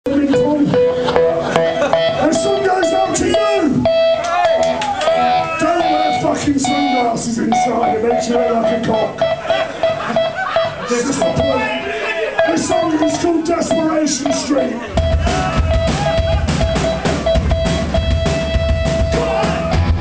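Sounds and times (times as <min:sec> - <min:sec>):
punk band playing: 0:00.1 - 0:20.0
voices over music: 0:02.2 - 0:09.2, 0:10.8 - 0:17.2, 0:19.0 - 0:20.0.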